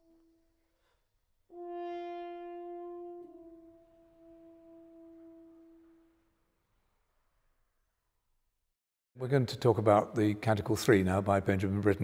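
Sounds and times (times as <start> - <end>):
faint pure horn tone: 0.0 - 6.4.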